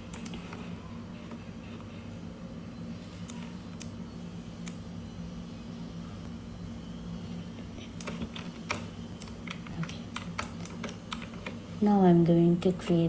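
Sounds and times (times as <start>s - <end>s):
low steady hum: 0.0s - 13.0s
computer keyboard clicking: 8.0s - 11.6s.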